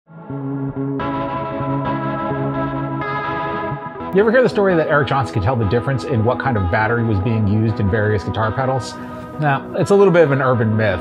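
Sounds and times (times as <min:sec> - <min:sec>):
electric guitar chords: 0:00.1 - 0:11.0.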